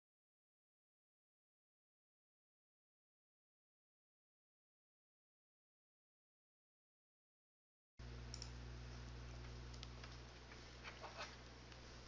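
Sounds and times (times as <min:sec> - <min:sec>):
steady low hum: 0:08.0 - 0:12.0.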